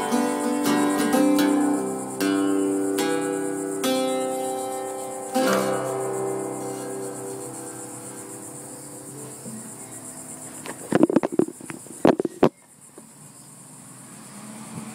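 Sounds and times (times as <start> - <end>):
strummed chord ringing out: 0.0 - 11.0.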